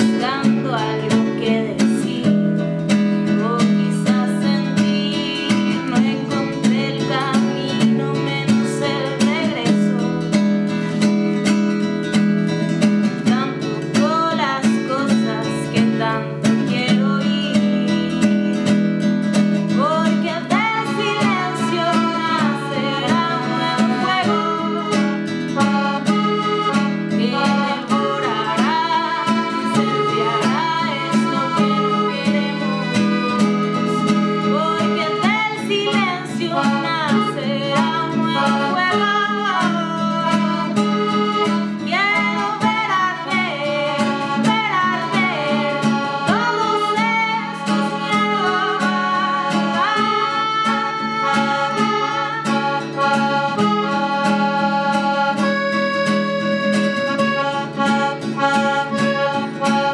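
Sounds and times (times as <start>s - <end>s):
accordion chords: 0.0s - 59.9s
strummed acoustic guitar: 0.0s - 59.9s
woman singing: 0.0s - 59.9s.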